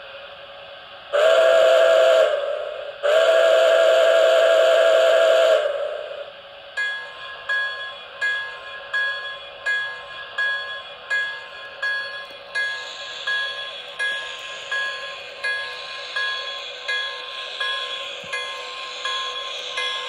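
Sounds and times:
model train steam whistle: 1.1s - 6.4s
locomotive bell ringing: 6.8s - 20.0s.

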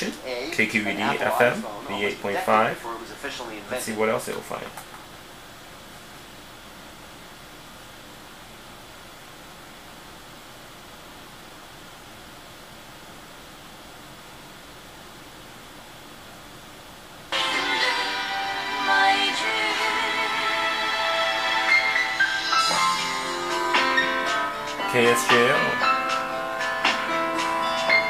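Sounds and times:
radio static hiss: 0.0s - 6.0s, 17.3s - 28.0s
music from radio speaker: 17.3s - 28.0s.

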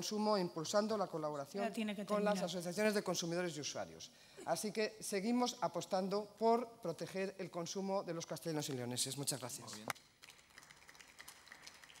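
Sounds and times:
scattered applause: 9.6s - 12.0s.

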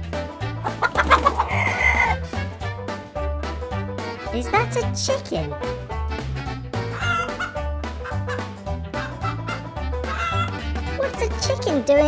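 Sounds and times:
background music with a beat: 0.0s - 12.0s
chicken clucking: 0.6s - 2.2s, 7.0s - 10.6s.

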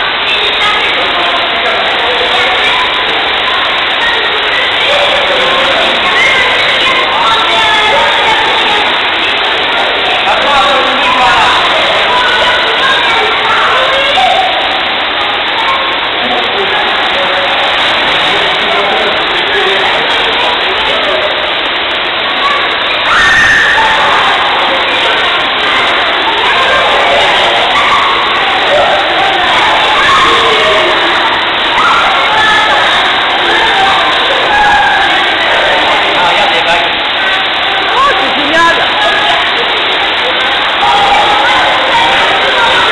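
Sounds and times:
children shouting at a pool: 0.0s - 42.9s.

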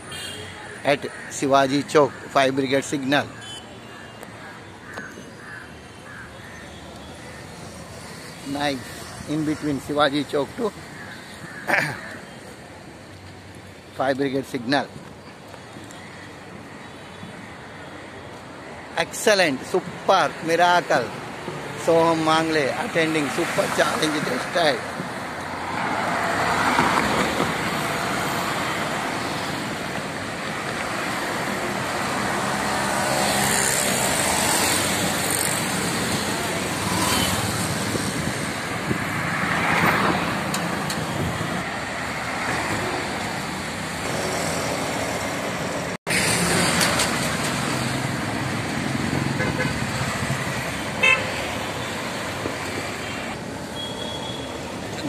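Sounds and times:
vehicles driving past: 17.8s - 55.0s.

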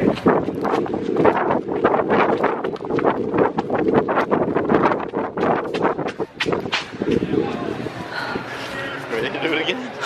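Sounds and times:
wind rumbling on microphone: 0.0s - 9.2s.

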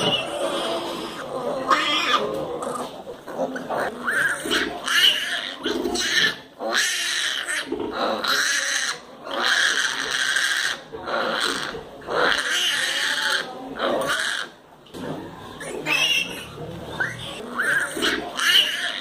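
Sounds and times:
piglets squealing: 0.0s - 14.6s, 15.6s - 19.0s.

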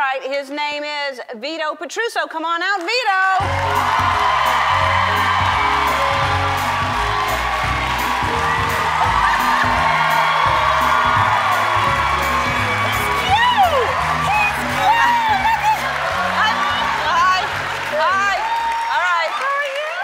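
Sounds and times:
music playing: 3.4s - 19.3s
studio audience cheering: 3.4s - 20.0s.

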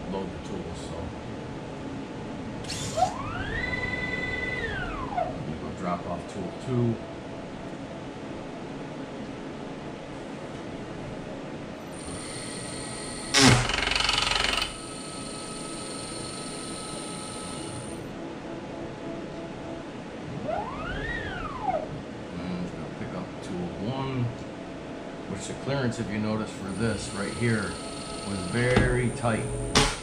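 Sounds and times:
axis move whine: 2.6s - 5.6s, 12.0s - 18.2s, 20.2s - 23.0s, 26.4s - 30.0s
spindle spinning with high whine: 2.6s - 5.6s, 12.0s - 18.0s, 20.3s - 22.5s, 26.0s - 30.0s.

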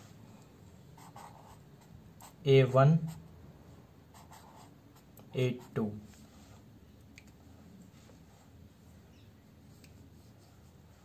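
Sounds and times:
pen scratching on paper: 1.0s - 2.4s, 4.1s - 5.8s.

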